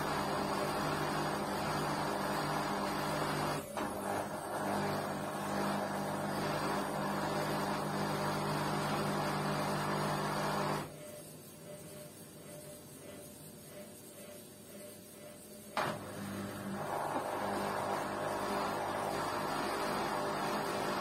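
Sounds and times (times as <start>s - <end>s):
washing machine humming: 0.0s - 21.0s.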